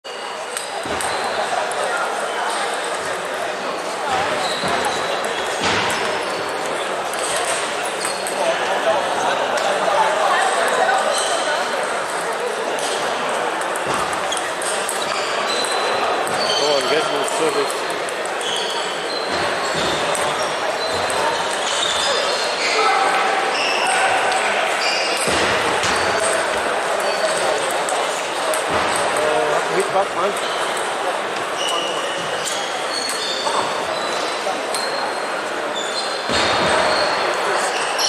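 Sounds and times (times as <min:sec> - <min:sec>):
murmur of voices: 0:00.0 - 0:38.0
ping pong balls clicking: 0:04.3 - 0:08.5, 0:11.6 - 0:22.3, 0:25.2 - 0:31.5
short high squeaks: 0:18.3 - 0:24.2, 0:31.6 - 0:38.0.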